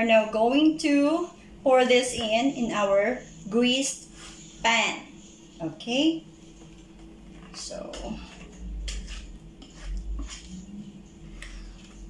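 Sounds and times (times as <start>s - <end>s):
utensil scraping a mixing bowl: 6.5s - 12.0s.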